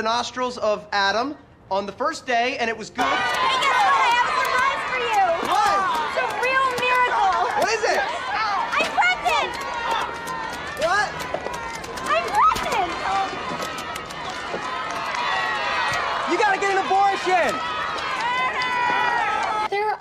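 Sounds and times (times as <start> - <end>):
voices calling out and chattering: 2.8 - 20.0.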